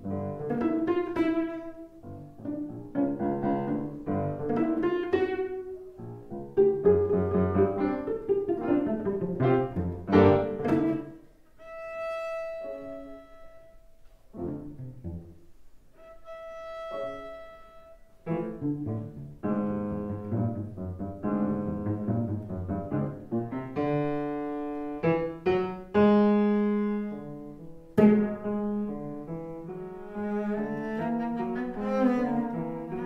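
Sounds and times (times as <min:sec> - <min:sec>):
cello: 0:00.0 - 0:33.0
grand piano: 0:00.0 - 0:33.0.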